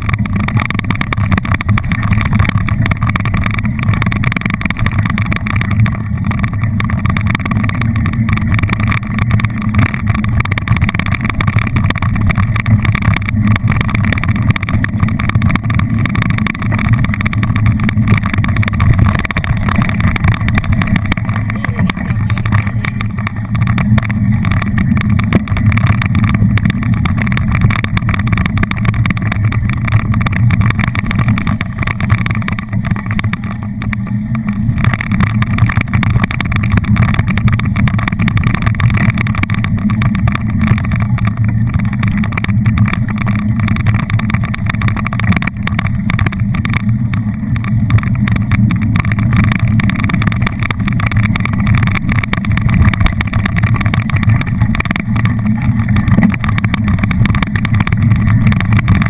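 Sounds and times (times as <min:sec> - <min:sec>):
bike tyres rumbling on dirt trail: 0:00.0 - 0:59.0
fine rattle: 0:00.0 - 0:59.0.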